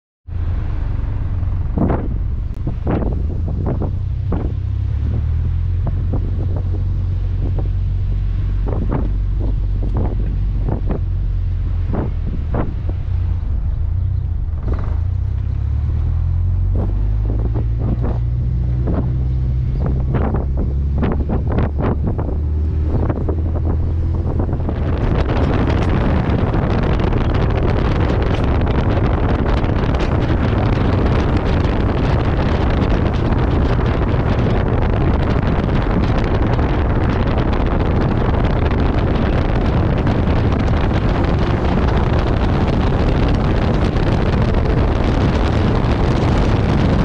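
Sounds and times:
car engine and exhaust rumble: 0.2s - 47.0s
wind buffeting microphone: 0.3s - 47.0s.

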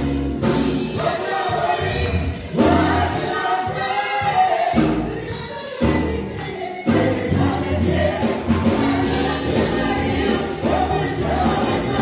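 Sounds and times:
bass guitar: 0.0s - 1.0s, 4.8s - 12.0s
gospel singers singing: 0.0s - 12.0s
keyboard: 0.0s - 12.0s.

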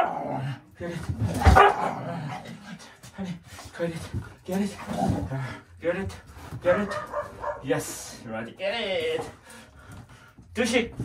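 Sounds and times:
dog barking: 1.4s - 2.0s, 6.7s - 7.7s.

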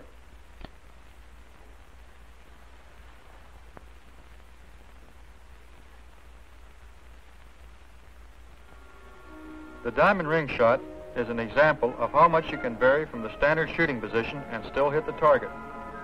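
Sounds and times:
film soundtrack hiss and hum: 0.0s - 16.0s
faint music notes: 8.6s - 16.0s.

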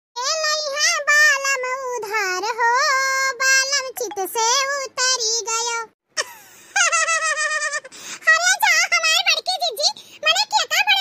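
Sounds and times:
high-pitched cartoon voice talking: 3.9s - 5.9s, 8.3s - 11.0s.

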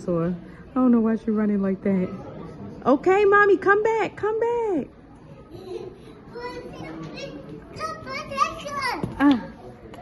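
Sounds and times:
indistinct chatter of voices: 0.0s - 10.0s.

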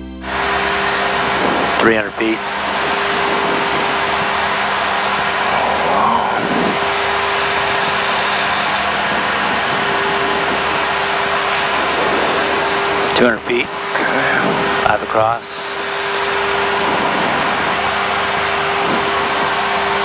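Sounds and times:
turboprop engines running: 0.0s - 20.0s.

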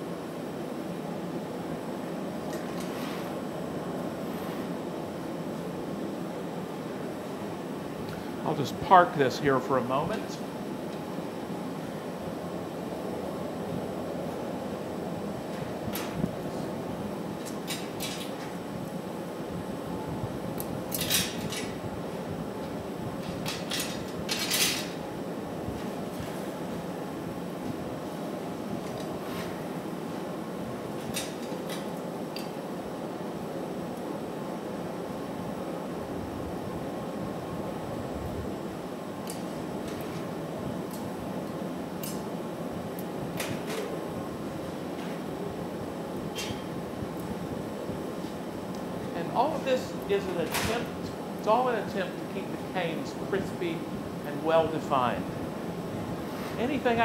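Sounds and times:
furnace and fan roar: 0.0s - 57.0s.

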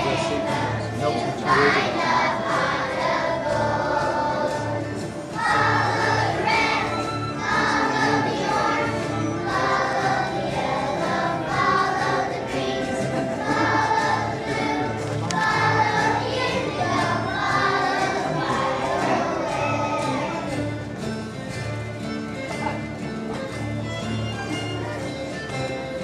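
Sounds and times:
children's choir singing: 0.0s - 21.3s.

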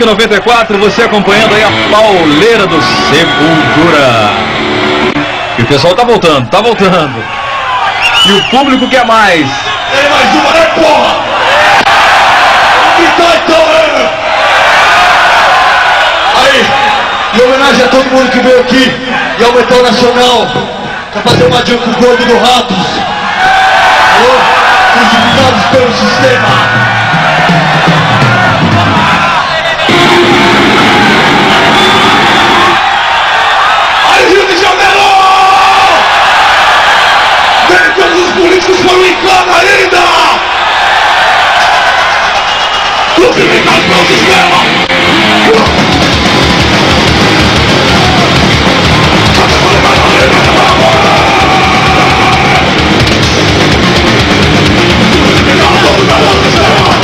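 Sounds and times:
crowd cheering and yelling: 0.0s - 57.0s
metal band playing: 1.2s - 5.4s, 25.0s - 32.9s, 43.4s - 57.0s.

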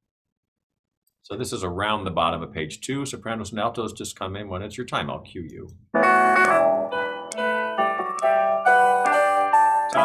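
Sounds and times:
piano chords and melody: 6.0s - 10.0s.

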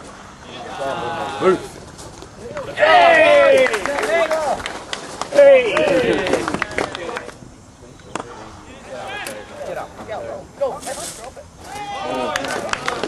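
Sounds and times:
voices shouting and calling: 0.4s - 13.0s.

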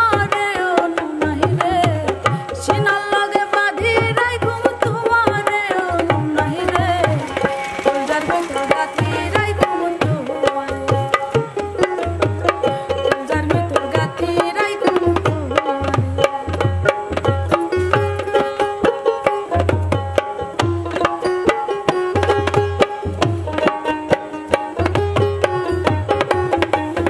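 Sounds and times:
plucked string melody: 0.0s - 27.0s.

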